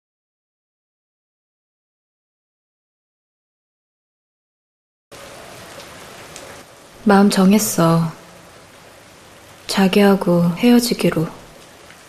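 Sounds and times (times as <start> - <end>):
steady rain-like hiss: 5.1 - 12.0.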